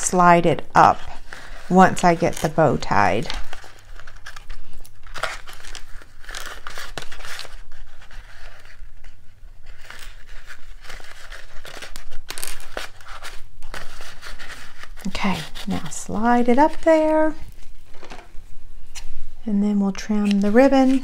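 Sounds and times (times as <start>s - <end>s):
ribbon rustling and crinkling: 0.6s - 21.0s.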